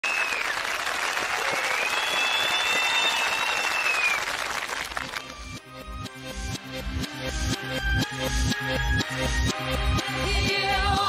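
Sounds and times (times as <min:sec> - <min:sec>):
reversed applause: 0:00.0 - 0:05.3.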